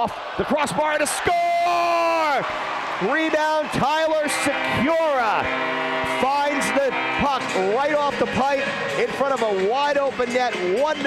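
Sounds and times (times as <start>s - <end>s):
man giving hockey commentary: 0.0s - 5.5s, 6.1s - 11.0s.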